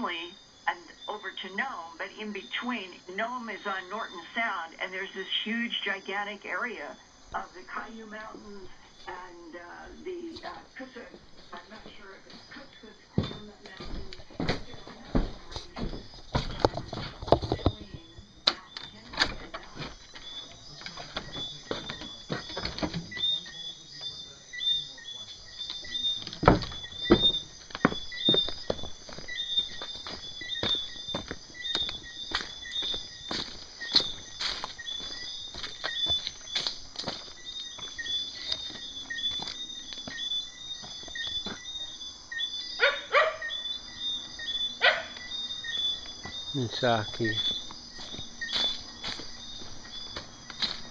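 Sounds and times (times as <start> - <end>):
crickets chirping: 0.0 - 50.9.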